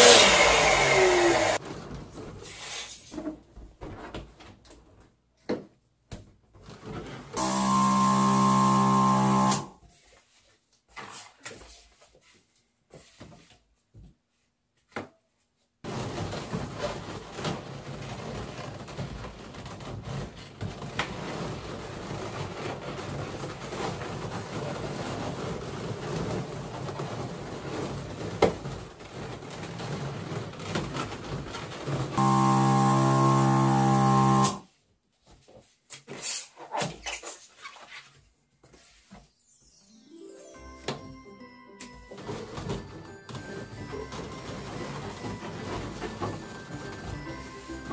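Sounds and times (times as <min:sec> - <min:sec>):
balloon inflator motor hum: 0:00.0 - 0:01.6, 0:07.4 - 0:09.8, 0:32.1 - 0:34.7.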